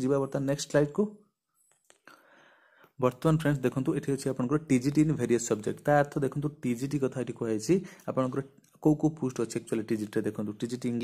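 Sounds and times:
man speaking: 0:00.0 - 0:01.3, 0:03.0 - 0:11.0
faint breath: 0:02.0 - 0:03.0, 0:07.8 - 0:08.1.

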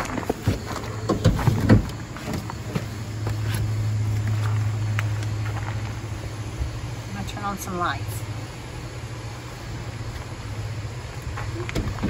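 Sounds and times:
footsteps on van floor: 0:00.0 - 0:06.2, 0:11.0 - 0:12.0.

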